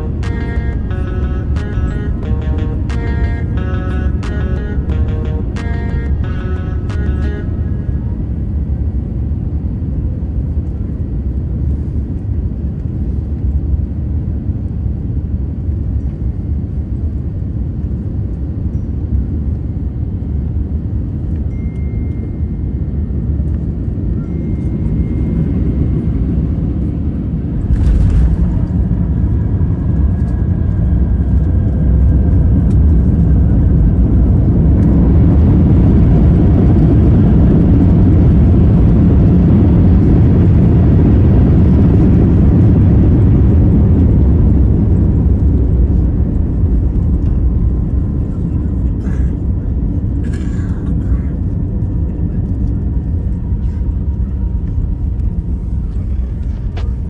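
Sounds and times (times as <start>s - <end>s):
background music with beat: 0.0s - 7.9s
airliner cabin rumble: 0.0s - 21.5s, 22.3s - 57.0s.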